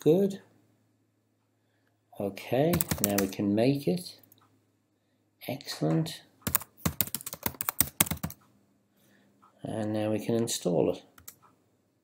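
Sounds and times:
computer keyboard typing: 2.7 - 3.4, 6.4 - 8.4, 11.2 - 11.4.

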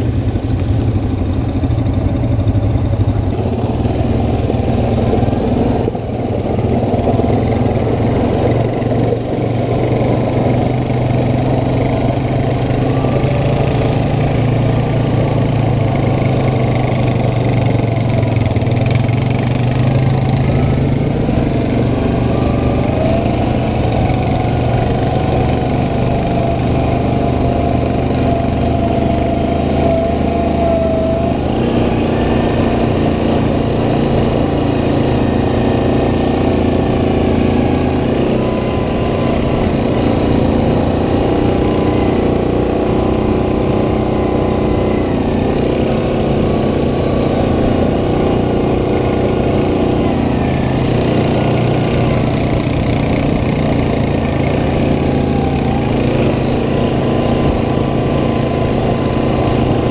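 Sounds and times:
high engine whine: 0.0 - 59.9
quad bike engine running: 0.0 - 59.9.

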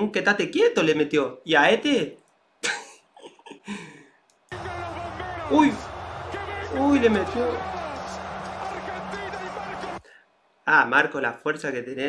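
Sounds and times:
commentator talking: 4.5 - 10.0
stadium crowd noise: 4.5 - 10.2.

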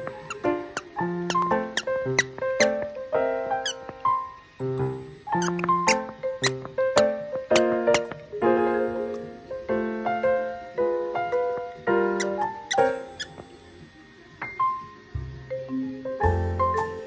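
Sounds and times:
squeaky toy squeaking: 0.0 - 2.9, 3.6 - 3.9, 5.3 - 8.2, 12.2 - 13.4
piano music: 0.0 - 17.0.

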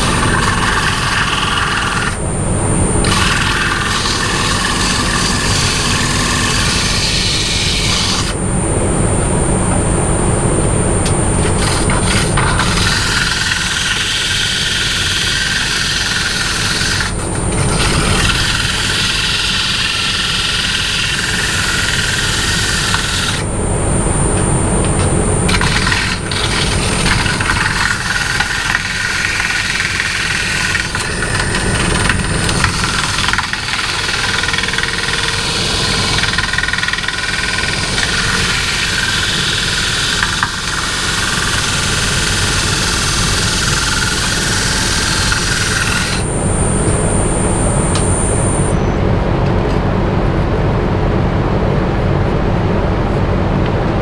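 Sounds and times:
tool cutting spinning wood: 0.0 - 8.5, 10.9 - 23.5, 24.2 - 48.7
wood lathe drone: 0.0 - 49.0
high whine: 0.0 - 54.0.

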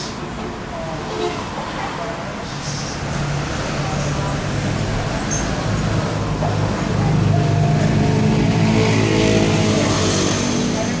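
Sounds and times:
low engine-like hum: 0.2 - 11.0.

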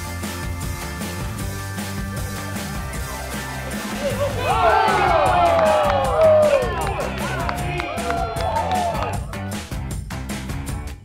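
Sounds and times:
rock music: 0.0 - 11.0
people cheering and whooping: 3.7 - 9.5.

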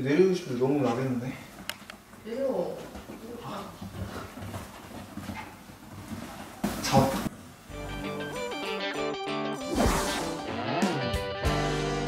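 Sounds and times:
dogs scuffling on sofa: 2.8 - 7.4.

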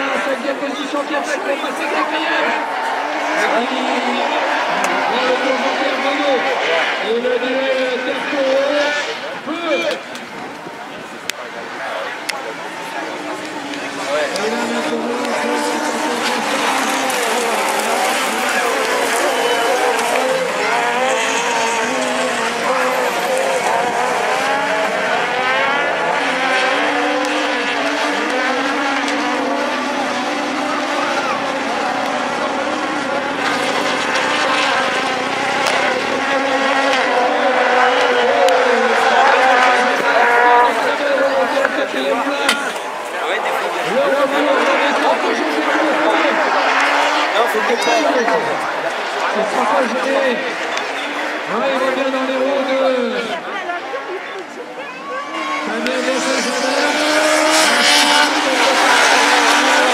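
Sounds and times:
racing car engines revving: 0.0 - 59.9.

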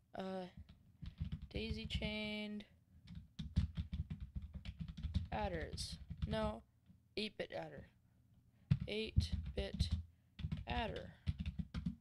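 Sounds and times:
typing on a keyboard: 0.6 - 2.2, 3.0 - 6.6, 8.7 - 12.0.

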